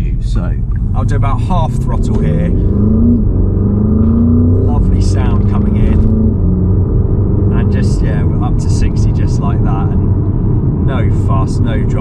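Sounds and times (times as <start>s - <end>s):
car engine accelerating with gear shifts: 0.1s - 12.0s.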